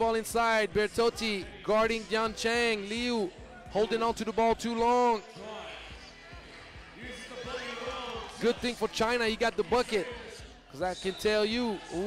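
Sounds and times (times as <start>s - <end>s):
background music: 0.0s - 12.0s
faint crowd voices: 0.0s - 12.0s.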